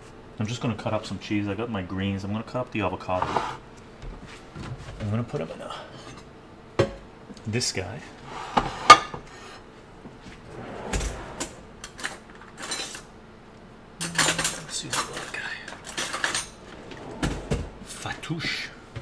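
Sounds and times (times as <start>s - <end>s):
dishes clinking and clattering: 10.6s - 13.1s, 14.0s - 17.8s.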